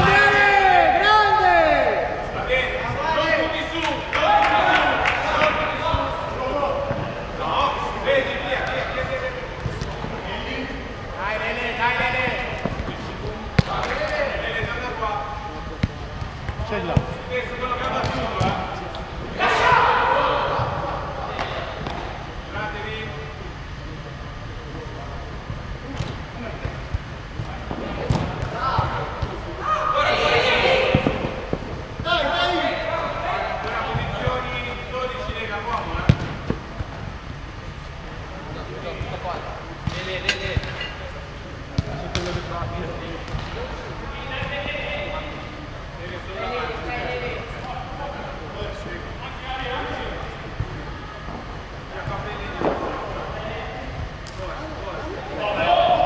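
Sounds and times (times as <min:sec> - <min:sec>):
players shouting: 0:00.0 - 0:09.4, 0:19.3 - 0:21.7, 0:28.0 - 0:36.0, 0:55.4 - 0:56.0.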